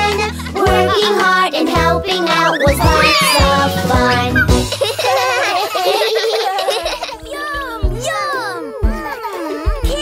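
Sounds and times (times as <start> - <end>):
children laughing: 0.0 - 10.0.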